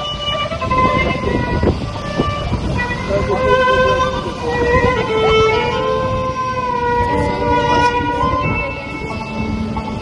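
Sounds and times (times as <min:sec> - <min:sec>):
bowed fiddle melody: 0:00.0 - 0:10.0
steady low rumble: 0:00.0 - 0:10.0.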